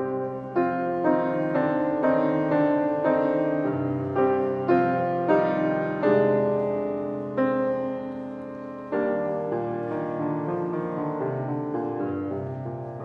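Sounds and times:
slow gentle piano: 0.0s - 13.0s.

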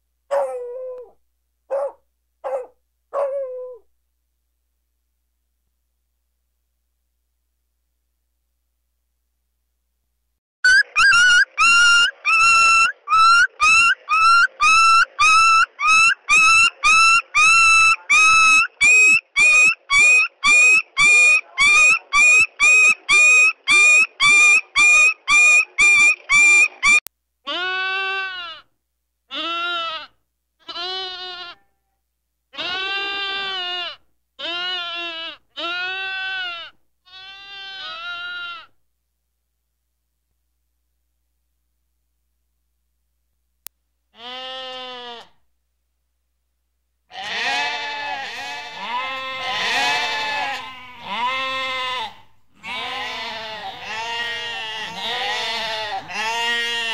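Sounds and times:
high-pitched animal calls: 10.6s - 28.6s
goat bleats: 14.0s - 28.7s, 29.3s - 31.9s, 32.5s - 38.8s, 44.2s - 45.4s, 47.1s - 56.9s.

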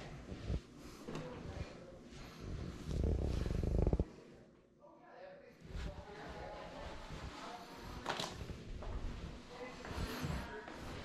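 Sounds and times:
fabric rustling and rubbing: 5.6s - 11.0s.

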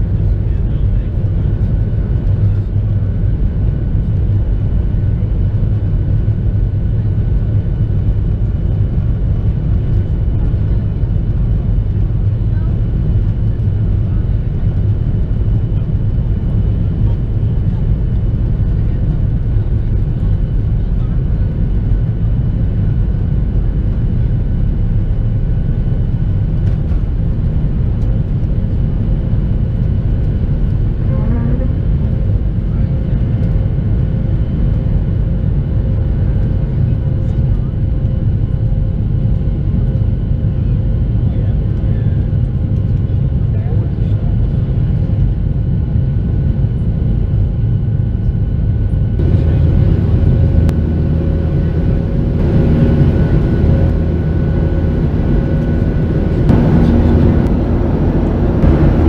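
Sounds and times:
faint high engine whine: 0.0s - 59.0s
jet engine rumble in cabin: 0.0s - 59.0s.

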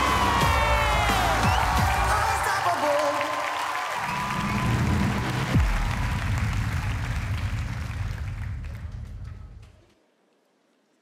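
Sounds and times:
audience applauding: 0.0s - 9.5s.

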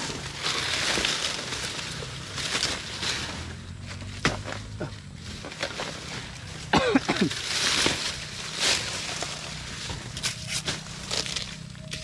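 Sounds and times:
leaves rustling: 0.0s - 12.0s.

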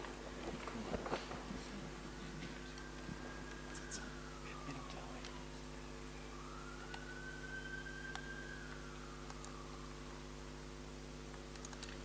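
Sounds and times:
electrical hum: 0.0s - 12.0s
faint whistle-like tone: 2.2s - 10.8s
laptop keys clicking: 11.5s - 12.0s.

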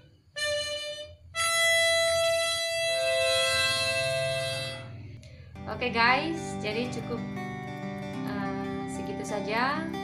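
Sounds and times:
harmonica holding a chord: 0.0s - 9.2s.

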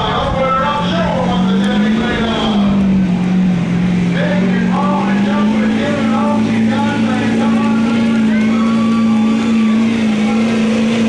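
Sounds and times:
announcer talking over loudspeaker: 0.0s - 2.9s, 4.1s - 11.0s
diesel engine droning at high revs: 0.0s - 11.0s.

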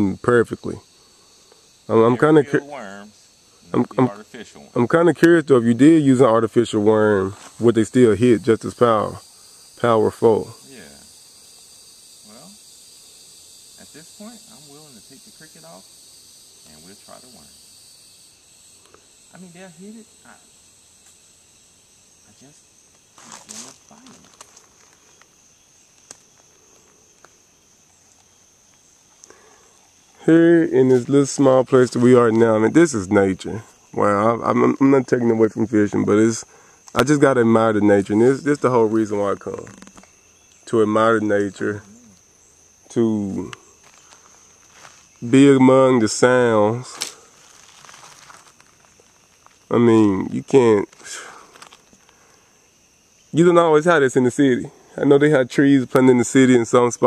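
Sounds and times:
high-pitched insect chorus: 0.0s - 57.0s
low mumbled voice: 39.3s - 40.0s
footsteps on gravel: 43.8s - 45.2s, 47.0s - 49.7s.

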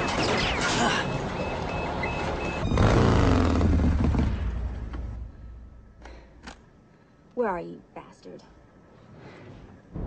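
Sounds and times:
dense mechanical din: 2.6s - 5.9s.

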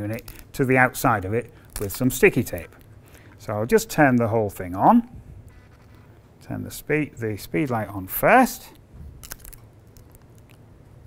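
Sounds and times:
plastic handling noises: 0.0s - 3.5s, 8.7s - 10.7s.

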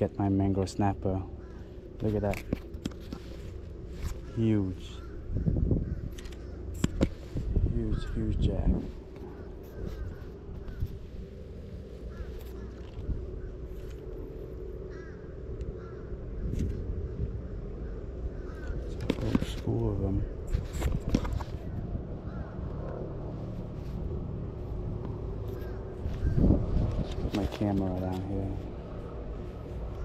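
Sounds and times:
birds calling: 0.0s - 30.0s
low rumble: 1.0s - 30.0s
harsh caw-like calls: 1.2s - 2.0s, 2.7s - 19.3s, 21.0s - 23.3s, 25.3s - 26.6s.

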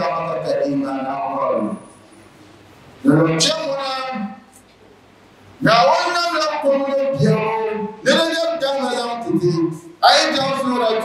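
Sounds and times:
low background hiss: 0.0s - 11.0s
man holding drawn-out syllable: 3.0s - 4.5s, 5.6s - 11.0s.

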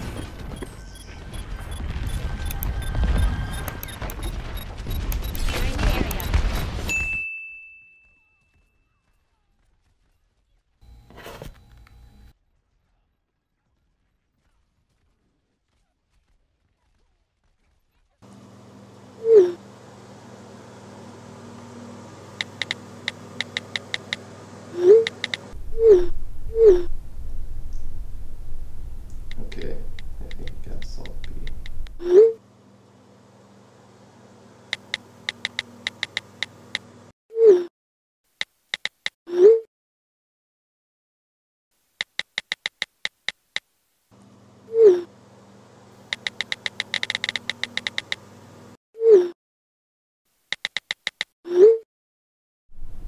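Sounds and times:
low steady hum: 18.2s - 37.1s, 52.7s - 53.0s
phone keyboard clicks: 22.4s - 24.2s, 25.0s - 25.5s, 34.7s - 36.8s, 38.4s - 39.2s, 42.0s - 43.4s, 46.1s - 48.2s, 50.5s - 51.3s.

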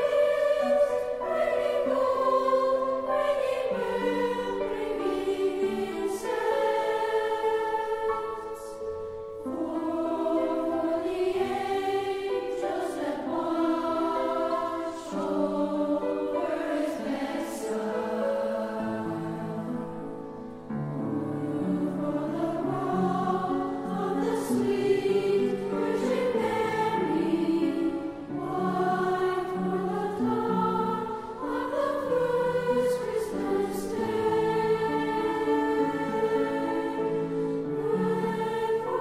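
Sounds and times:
boys' choir singing a carol: 0.0s - 39.0s.

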